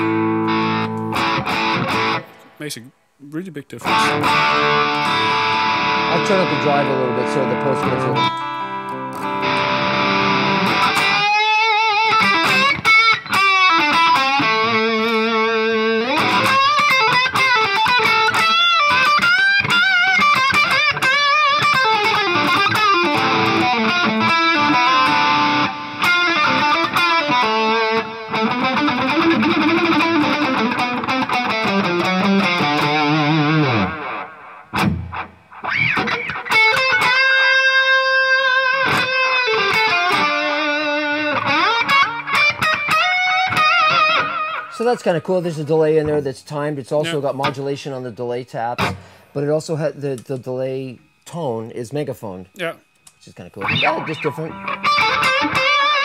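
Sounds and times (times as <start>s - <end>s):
overdriven electric guitar lead: 0.0s - 2.6s, 3.8s - 44.8s, 53.6s - 56.0s.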